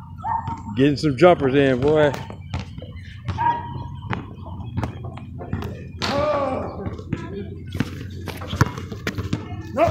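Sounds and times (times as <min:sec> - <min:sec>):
basketball bouncing on asphalt: 0:01.7 - 0:06.1, 0:06.8 - 0:09.7.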